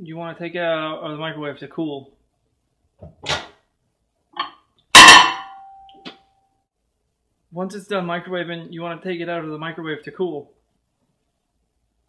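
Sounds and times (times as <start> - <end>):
short metallic ring: 4.4 - 6.0.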